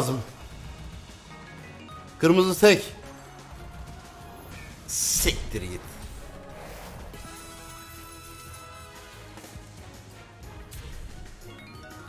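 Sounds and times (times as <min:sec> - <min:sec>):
slot game music: 0:00.0 - 0:12.0
chiming jingle: 0:01.5 - 0:03.0, 0:07.2 - 0:09.2, 0:11.4 - 0:12.0.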